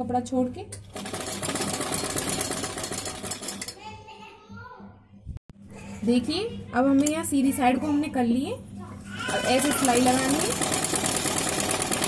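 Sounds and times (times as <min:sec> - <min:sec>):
sewing machine stitching: 0:00.9 - 0:03.8, 0:09.2 - 0:12.0.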